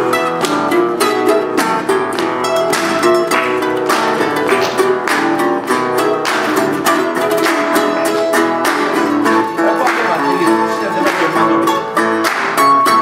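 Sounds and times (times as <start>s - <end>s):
mandolin strumming: 0.0s - 13.0s
resonator guitar playing blues: 0.0s - 13.0s.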